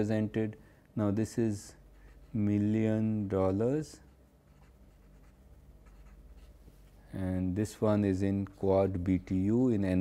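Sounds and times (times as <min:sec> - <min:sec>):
marker scratching on paper: 0:04.0 - 0:06.6.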